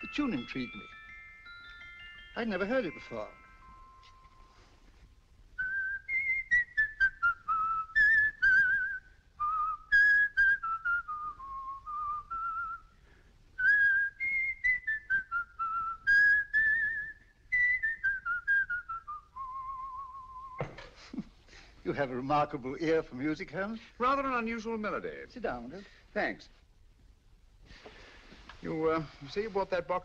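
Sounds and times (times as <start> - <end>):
man whistling a melody: 5.6 - 13.0, 13.6 - 20.6.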